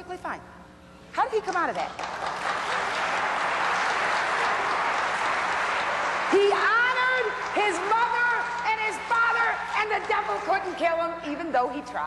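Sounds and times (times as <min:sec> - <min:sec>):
audience applauding: 0:01.9 - 0:10.6.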